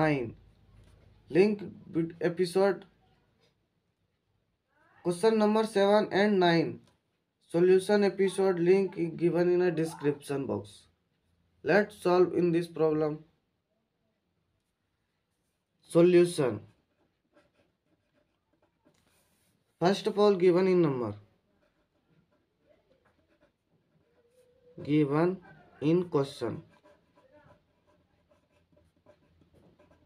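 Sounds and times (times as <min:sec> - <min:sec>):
pen scratching on paper: 0:14.6 - 0:30.0.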